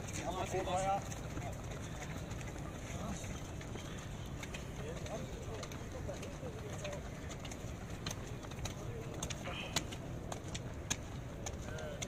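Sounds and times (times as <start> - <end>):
footfalls jogging on rubber track: 0.0 - 12.0.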